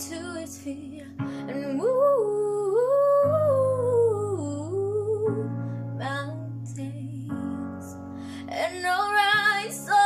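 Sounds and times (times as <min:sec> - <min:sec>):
soft piano backing: 0:00.0 - 0:10.0
woman singing: 0:00.0 - 0:10.0.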